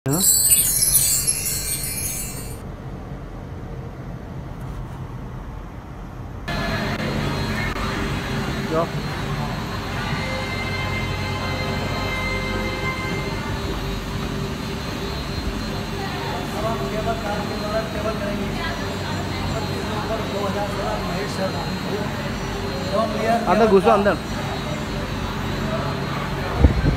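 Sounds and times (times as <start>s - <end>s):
bright shimmering chime: 0.0s - 2.6s.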